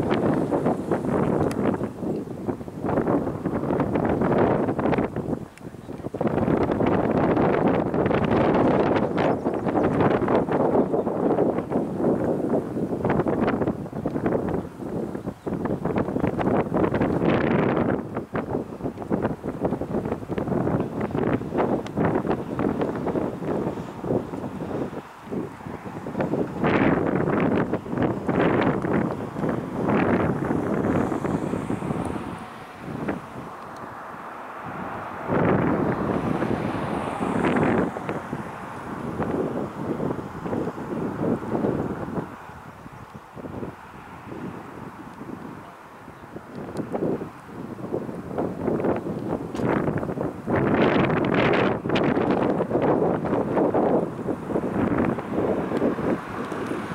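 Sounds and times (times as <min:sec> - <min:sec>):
wind buffeting microphone: 0:00.0 - 0:56.9.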